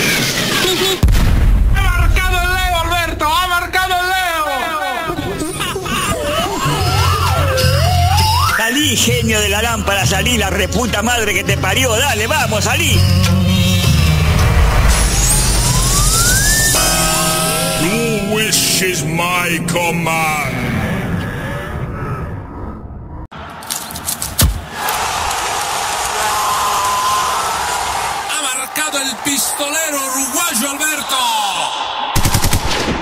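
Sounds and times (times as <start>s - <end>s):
low rumble: 1.1s - 4.4s
rising tone sweep: 14.2s - 18.3s
music jingle with held chords: 16.7s - 20.1s
machine-gun fire: 32.2s - 33.0s.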